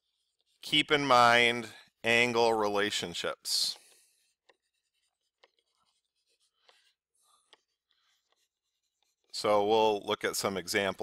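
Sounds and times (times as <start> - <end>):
stylus writing on tablet: 0.0 - 11.0.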